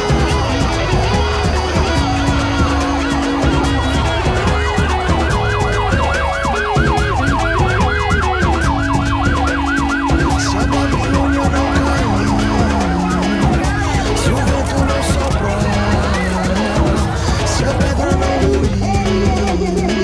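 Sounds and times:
ambulance siren yelping: 0.0 - 20.0
background music: 0.0 - 20.0.

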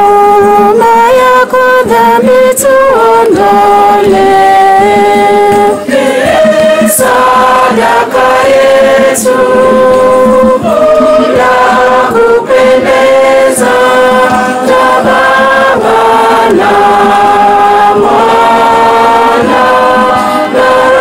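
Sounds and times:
choir singing a hymn: 2.3 - 21.0.

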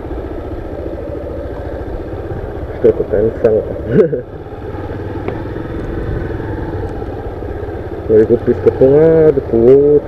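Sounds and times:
small motorcycle engine running: 0.0 - 10.0.

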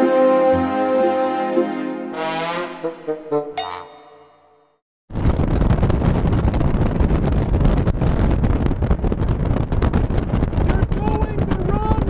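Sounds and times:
wind rushing over microphone: 5.1 - 12.0.

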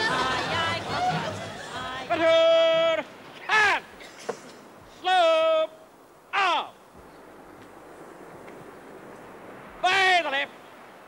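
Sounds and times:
man shouting drill command: 2.1 - 3.9, 5.0 - 6.8, 9.8 - 10.6.

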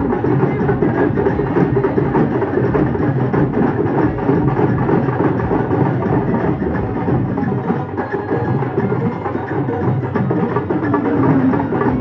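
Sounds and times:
drums beaten loud and fast: 0.0 - 12.0.

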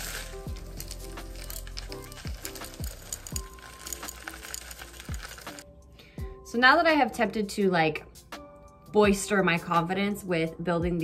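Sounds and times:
salts clinking against glass: 0.0 - 5.6
salts hissing into glass: 0.0 - 5.6.

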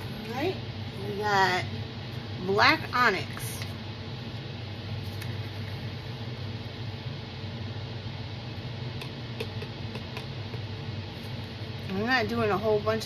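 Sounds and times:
fan hum with light hiss: 0.0 - 13.0.

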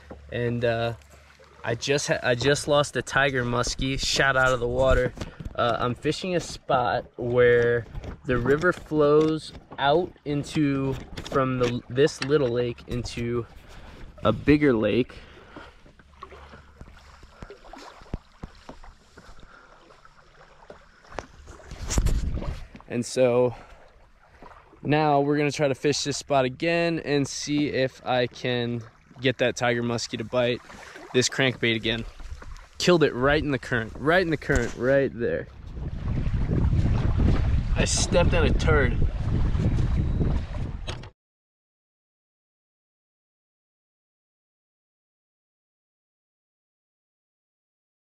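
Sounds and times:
wind: 0.0 - 41.2
wind buffeting microphone: 21.7 - 22.8, 32.0 - 41.1.

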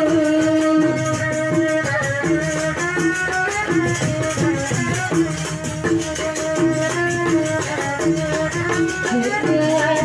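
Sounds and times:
hand drums: 0.0 - 10.0
shaking rattle rhythm: 0.0 - 10.0.

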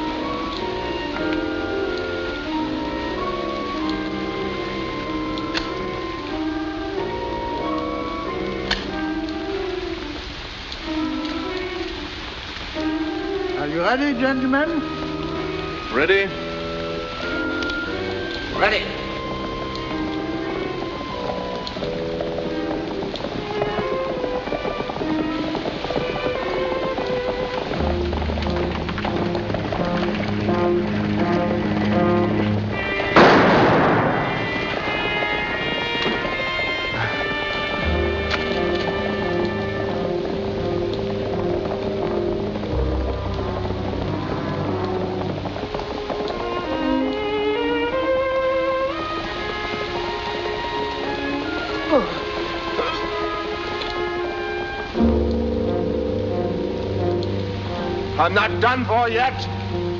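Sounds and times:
dramatic orchestral score: 0.0 - 59.9
pistol shot with echo: 33.2 - 34.5.

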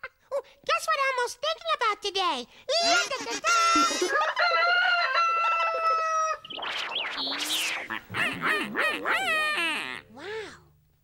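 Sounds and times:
rooster crowing: 4.0 - 6.4
bird squawks: 6.4 - 10.0
fast warbling call: 6.4 - 10.1.

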